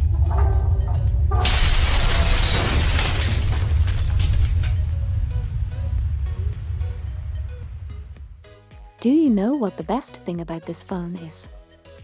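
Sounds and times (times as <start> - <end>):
crash and shatter effect: 0.0 - 6.8.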